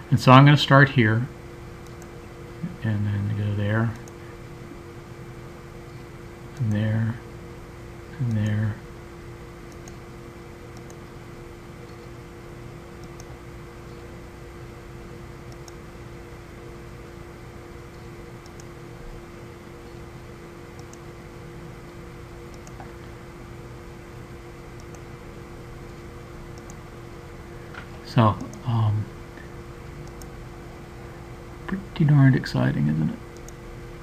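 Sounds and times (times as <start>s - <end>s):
computer fan humming: 0.0s - 34.0s
faint mouse clicks: 9.7s - 10.0s, 10.8s - 11.1s, 13.0s - 14.0s, 15.5s - 15.8s, 17.9s - 18.7s, 20.8s - 21.0s, 22.5s - 22.9s, 24.8s - 25.0s, 26.6s - 26.8s, 29.4s - 30.3s.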